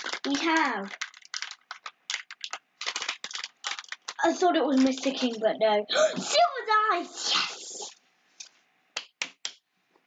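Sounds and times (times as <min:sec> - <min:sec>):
plastic packet tearing and crinkling: 0:00.0 - 0:05.4.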